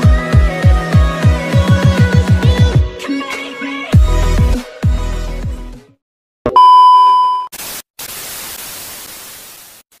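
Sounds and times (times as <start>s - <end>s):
television static hiss: 7.6s - 10.0s.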